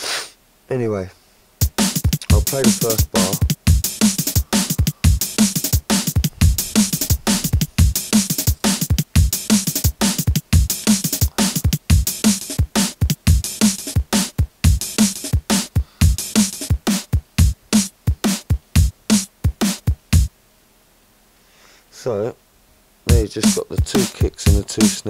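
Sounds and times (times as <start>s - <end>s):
drum-and-bass drum loop: 1.6s - 20.3s, 23.1s - 25.0s.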